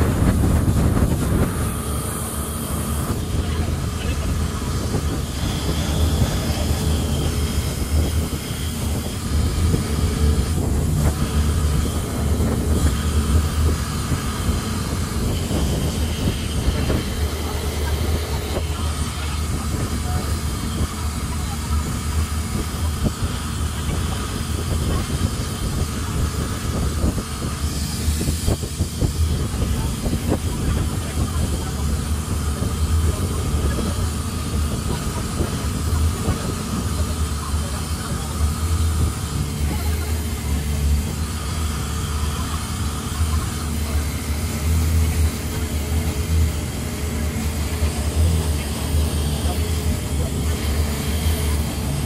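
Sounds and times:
boat engine droning: 0:00.0 - 0:52.0
wind rushing past microphone: 0:00.0 - 0:52.0.

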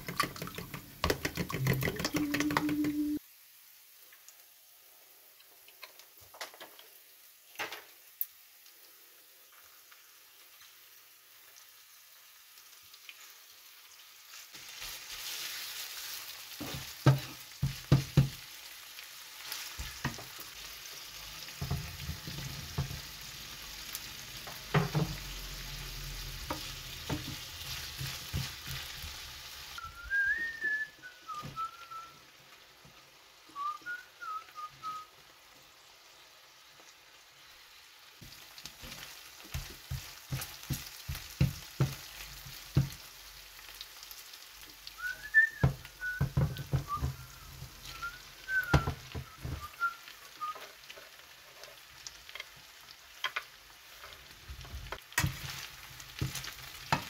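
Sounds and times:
bacon and onion sizzling in a pan: 0:00.0 - 0:57.0
whistled notes: 0:02.0 - 0:03.2, 0:29.8 - 0:32.2, 0:33.5 - 0:35.1, 0:45.0 - 0:50.7
wooden spatula stirring in a pan: 0:14.4 - 0:18.6, 0:19.3 - 0:23.2, 0:24.4 - 0:30.8, 0:38.2 - 0:43.2, 0:44.9 - 0:57.0.

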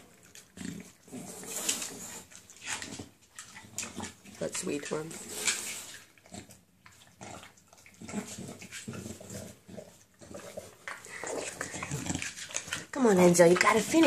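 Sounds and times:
dog snuffling and snorting: 0:00.6 - 0:14.0.

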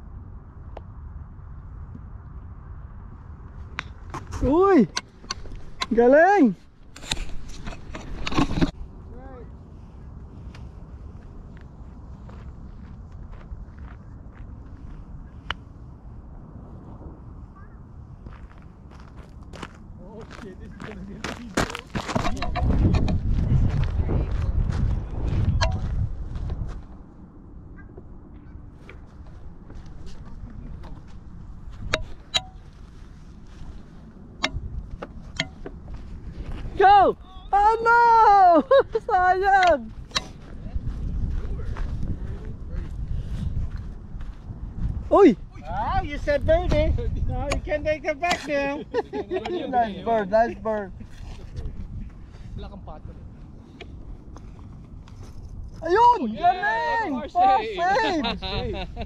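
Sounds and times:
wind rumbling on microphone: 0:00.0 - 0:49.3, 0:50.1 - 0:59.0.

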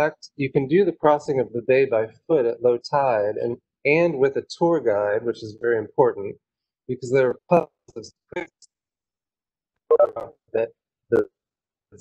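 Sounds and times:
man speaking: 0:00.0 - 0:08.7, 0:09.9 - 0:11.4.

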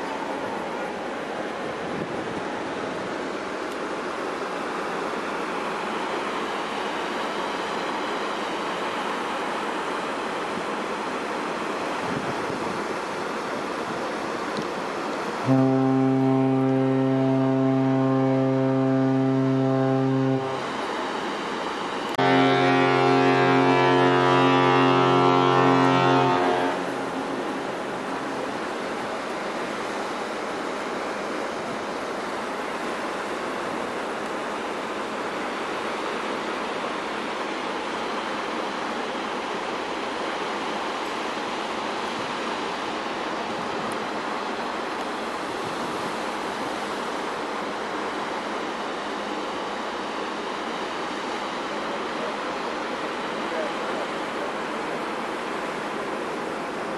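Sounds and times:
wind and sea hiss: 0:00.0 - 0:56.9
ship fog horn blasts: 0:15.4 - 0:20.9, 0:22.1 - 0:27.6.

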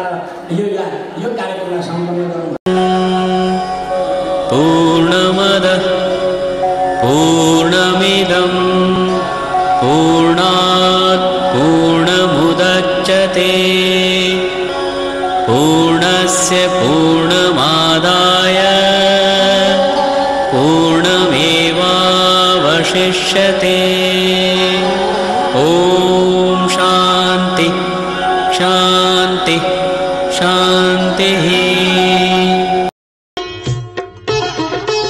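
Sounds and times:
mantra chanting: 0:00.0 - 0:32.9
musical accompaniment: 0:02.7 - 0:35.0.

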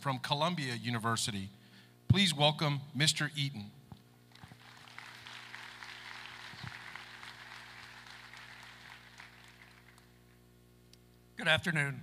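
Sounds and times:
low electrical hum: 0:00.0 - 0:12.0
audience applauding: 0:04.3 - 0:10.2.

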